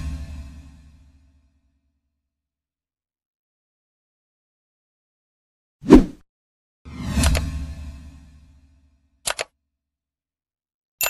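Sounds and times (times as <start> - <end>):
mouse double click: 9.3 - 9.5.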